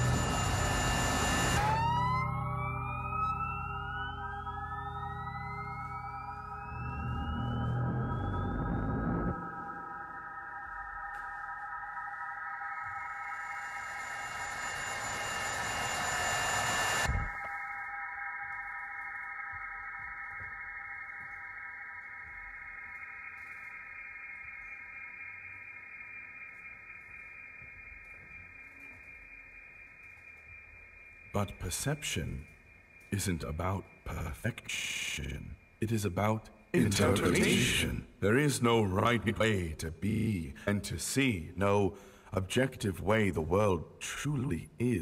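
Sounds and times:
rising gliding tones: 0:00.0 - 0:17.8
held high drone tones: 0:00.0 - 0:35.7, 0:36.8 - 0:38.1
low rumbling noise: 0:02.4 - 0:10.3.

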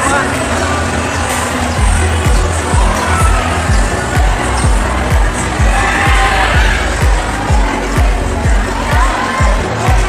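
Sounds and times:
crowd chatter: 0:00.0 - 0:10.0
music with pulsing bass beat: 0:01.7 - 0:10.0.

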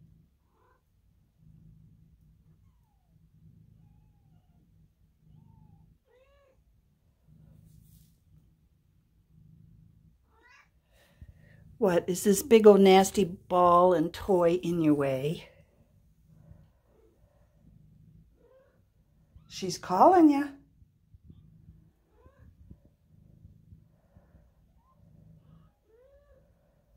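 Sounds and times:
cat purring: 0:00.0 - 0:26.9.

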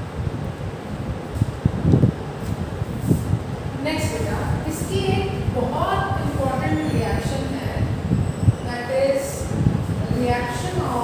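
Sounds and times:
woman's voice: 0:03.7 - 0:08.0, 0:08.6 - 0:11.0.

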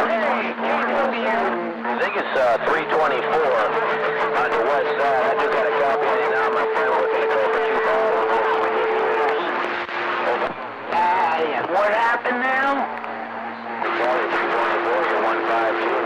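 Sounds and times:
garbled radio voices: 0:00.0 - 0:16.0.

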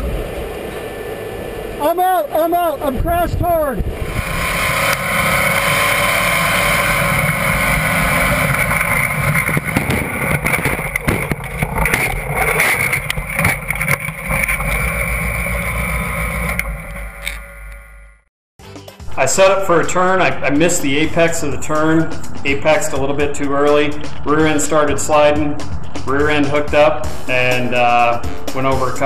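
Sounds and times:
rushing drone with low rumble: 0:00.0 - 0:18.3, 0:19.3 - 0:29.0
knocks and rattles: 0:05.5 - 0:17.4.

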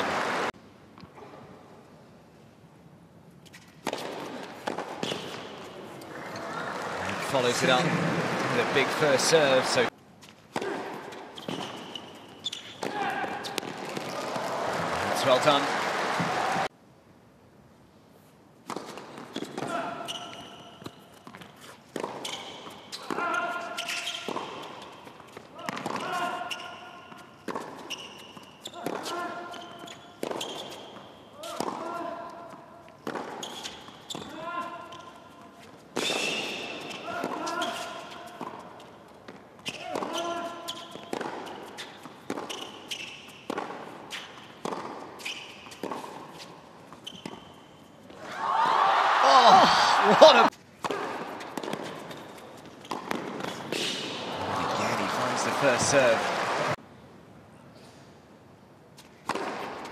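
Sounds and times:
crowd cheering: 0:00.0 - 0:00.5, 0:06.1 - 0:09.9, 0:14.0 - 0:16.7, 0:48.2 - 0:50.5, 0:54.0 - 0:56.8
tennis ball struck by racket: 0:03.8 - 0:05.5, 0:33.0 - 0:33.4, 0:41.1 - 0:42.6, 0:43.5 - 0:45.1, 0:50.8 - 0:52.2, 0:59.2 - 0:59.9
ball bouncing on hard court: 0:03.8 - 0:05.7, 0:18.6 - 0:32.1, 0:33.0 - 0:34.4, 0:39.2 - 0:46.3, 0:50.8 - 0:54.1, 0:59.2 - 0:59.9
players grunting: 0:49.1 - 0:50.5.

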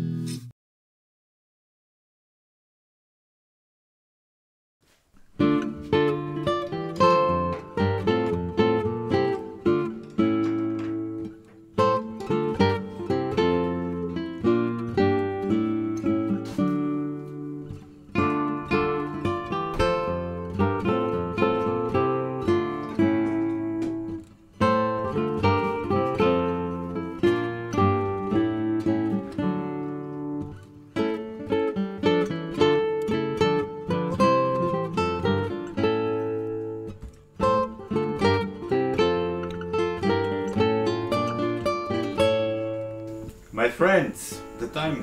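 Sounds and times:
acoustic guitar music: 0:00.0 - 0:00.5, 0:04.9 - 0:45.0.

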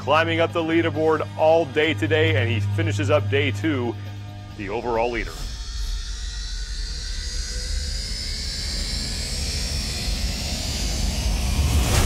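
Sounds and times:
low bass rumble: 0:00.6 - 0:12.0.

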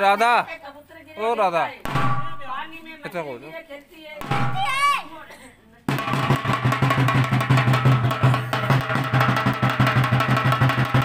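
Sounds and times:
fast drumming: 0:05.9 - 0:11.0.

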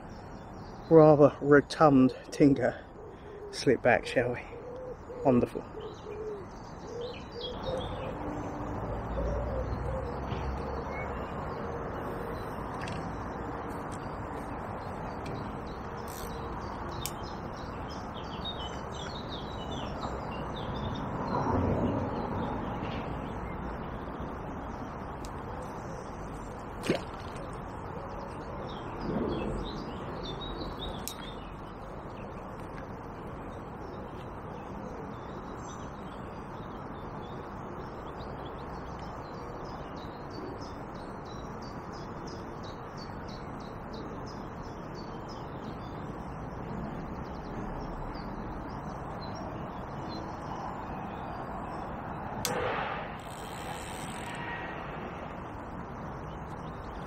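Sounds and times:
birds chirping and singing: 0:00.0 - 0:21.4
outdoor background noise: 0:00.0 - 0:57.0
sharp click: 0:52.4 - 0:54.4.

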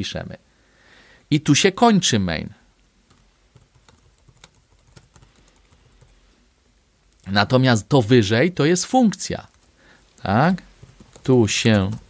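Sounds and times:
computer keyboard typing: 0:03.1 - 0:06.2, 0:09.5 - 0:12.0.

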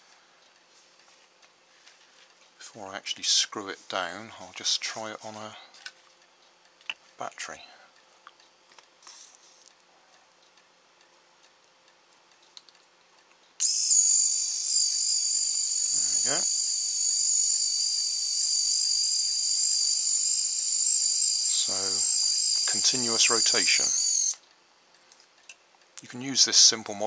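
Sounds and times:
servo motor high-pitched whine: 0:13.6 - 0:24.4.

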